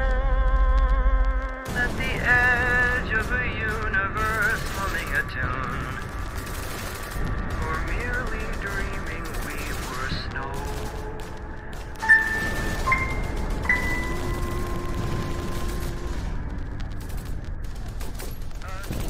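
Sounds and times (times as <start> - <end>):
music: 0.0 - 2.0, 10.6 - 18.4
deep rumble: 0.0 - 19.0
explosions: 0.5 - 19.0
gunfire: 1.6 - 19.0.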